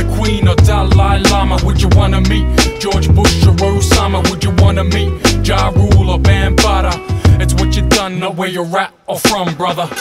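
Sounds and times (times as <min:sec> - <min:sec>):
deep bass: 0:00.0 - 0:08.0
hip hop track with vocals: 0:00.0 - 0:10.0.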